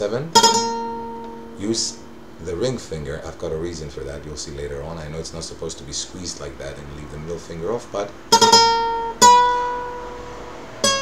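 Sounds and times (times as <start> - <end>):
guitar notes plucked: 0.0 - 3.8, 7.0 - 11.0.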